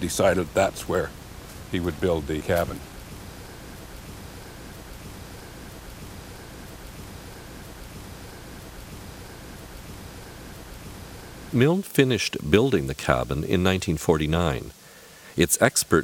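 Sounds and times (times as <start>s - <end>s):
faint pulsing high tone: 0.0s - 14.8s
steady background hiss: 0.0s - 16.0s.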